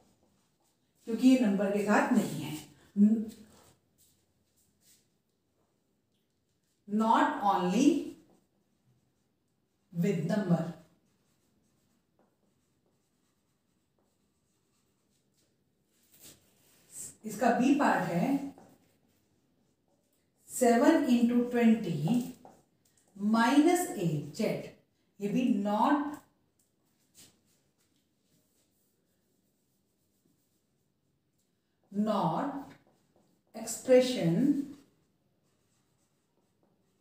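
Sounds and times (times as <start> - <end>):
marker pen writing on whiteboard: 1.8 - 23.2, 25.4 - 37.0.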